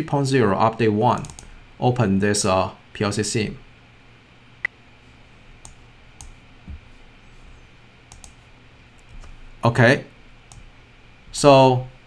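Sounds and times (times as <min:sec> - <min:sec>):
steady low hum: 0:00.0 - 0:12.0
computer mouse clicks: 0:01.2 - 0:01.5, 0:05.6 - 0:06.4, 0:08.1 - 0:08.4.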